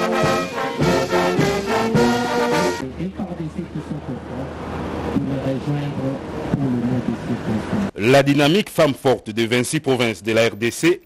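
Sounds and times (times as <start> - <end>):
man speaking into a microphone: 5.2 - 11.0.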